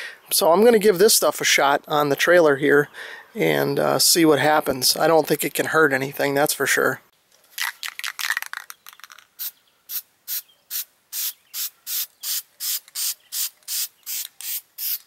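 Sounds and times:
aerosol can rattling: 0:07.5 - 0:09.5, 0:10.3 - 0:15.0.

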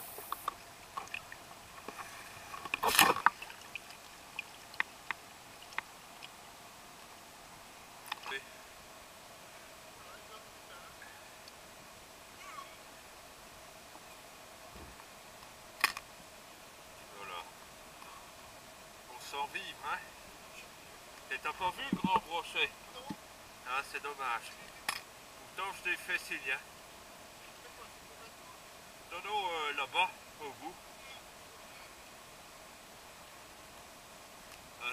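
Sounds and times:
low steady hiss: 0:00.0 - 0:34.9
water splashing and dripping: 0:00.5 - 0:02.0, 0:02.6 - 0:06.4
loud splash: 0:02.8 - 0:03.7.

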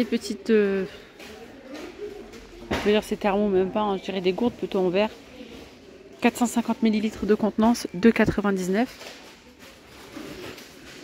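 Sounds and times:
woman speaking: 0:00.0 - 0:01.1, 0:02.7 - 0:05.2, 0:06.2 - 0:09.0
faint background voices: 0:00.0 - 0:08.4.

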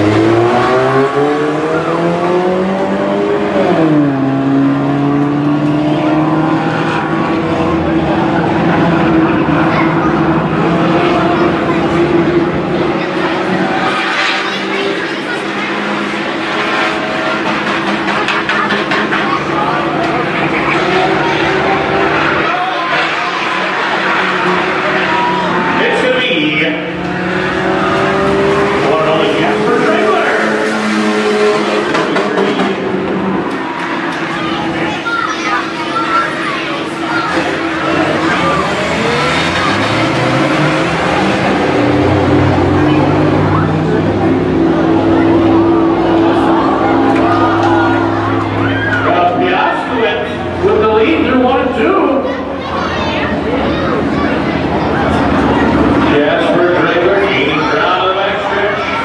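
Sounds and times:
race car engines: 0:00.0 - 0:59.0.

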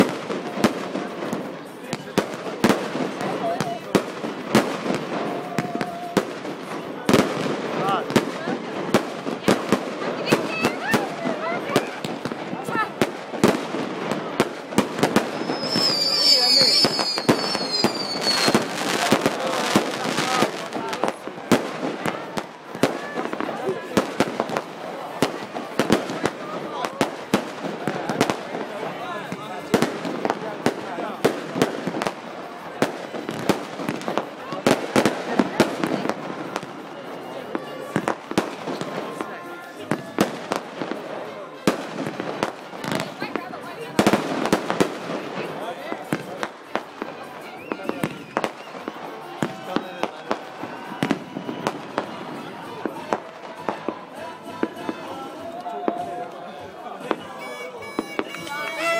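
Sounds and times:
crowd voices: 0:00.0 - 0:58.9
fireworks bangs and crackles: 0:00.0 - 0:58.9.

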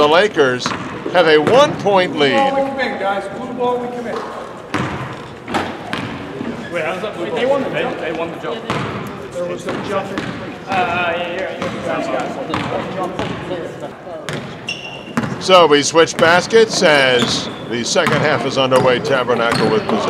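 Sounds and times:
many people talking: 0:00.0 - 0:20.0
basketballs bouncing on hardwood: 0:00.6 - 0:01.9, 0:04.7 - 0:06.4, 0:08.7 - 0:09.0, 0:09.6 - 0:11.0, 0:11.6 - 0:13.4, 0:14.3 - 0:15.5, 0:16.1 - 0:20.0.

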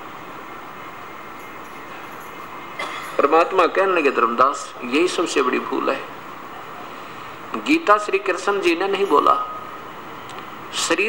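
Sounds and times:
background hiss and hum: 0:00.0 - 0:11.0
man speaking: 0:03.2 - 0:06.1, 0:07.5 - 0:09.6, 0:10.7 - 0:11.0.

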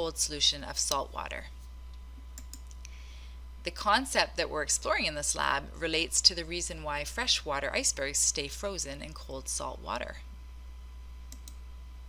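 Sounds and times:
low electrical hum: 0:00.0 - 0:12.0
computer clicks: 0:02.4 - 0:02.8, 0:11.3 - 0:11.6.

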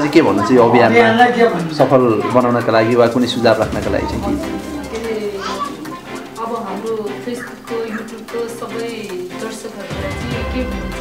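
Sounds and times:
background music: 0:00.0 - 0:11.0
woman speaking: 0:04.4 - 0:10.7.

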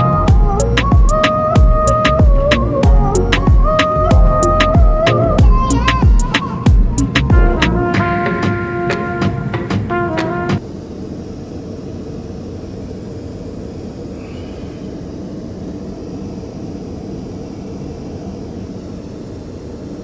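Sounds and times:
music track: 0:00.0 - 0:10.6
airliner cabin rumble and hiss: 0:00.0 - 0:20.0.

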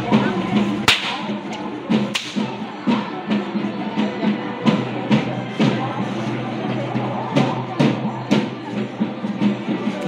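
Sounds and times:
rhythmic drumming: 0:00.0 - 0:10.0
whip cracks: 0:00.9 - 0:01.3, 0:02.1 - 0:02.4.

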